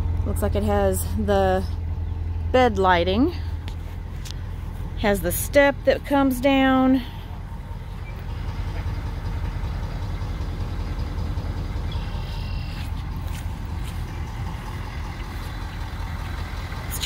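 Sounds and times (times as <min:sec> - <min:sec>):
diesel engine idling: 0:00.0 - 0:17.0.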